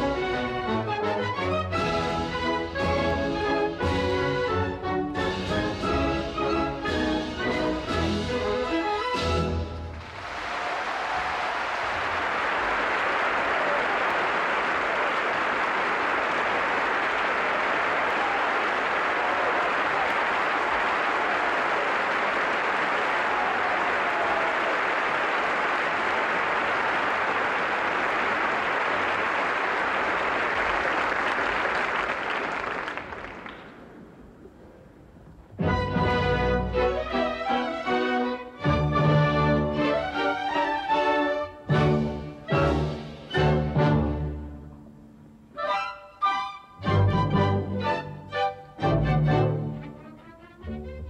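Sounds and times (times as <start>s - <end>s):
audience applauding: 9.9s - 34.6s.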